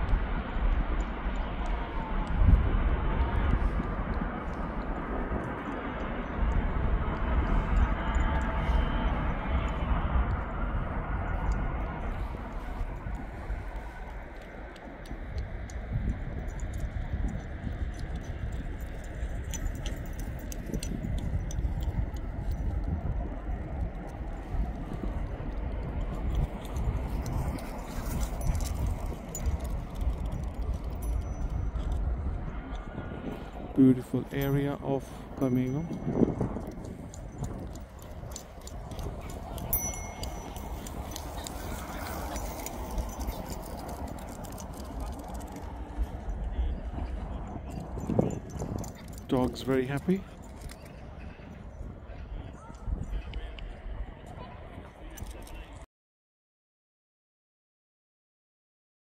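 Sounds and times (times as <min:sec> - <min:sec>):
jet airliner engine rumble: 0:00.0 - 0:55.8
scattered clicks: 0:11.3 - 0:33.5, 0:34.3 - 0:51.0.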